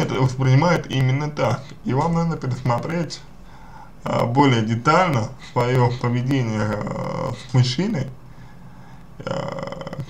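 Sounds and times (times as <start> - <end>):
man's drawn-out hesitation sound: 0.0 - 3.4, 4.0 - 8.2, 9.2 - 10.0.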